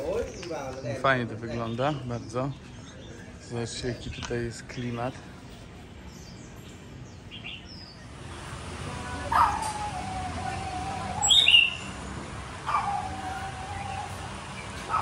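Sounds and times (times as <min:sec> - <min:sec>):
street noise: 0:00.0 - 0:15.0
sharp high bird call: 0:09.3 - 0:12.0
faint high bird chirps: 0:09.4 - 0:12.0.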